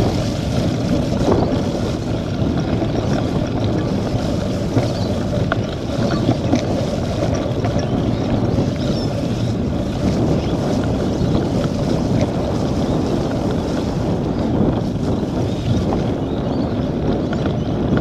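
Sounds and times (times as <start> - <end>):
tyres rolling through wet mud: 0.0 - 18.0
wind noise on microphone: 0.0 - 18.0.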